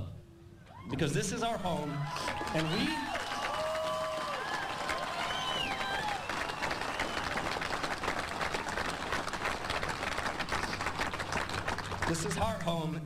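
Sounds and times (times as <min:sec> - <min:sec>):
crowd applauding: 0:01.9 - 0:12.6.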